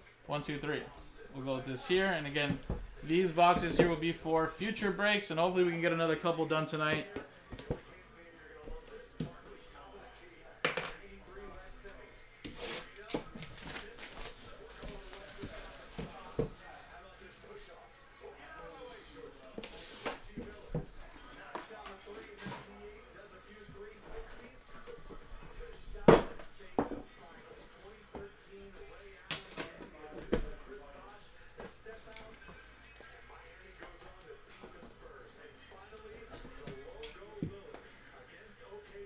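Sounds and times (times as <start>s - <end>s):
faint background music: 0.0s - 39.0s.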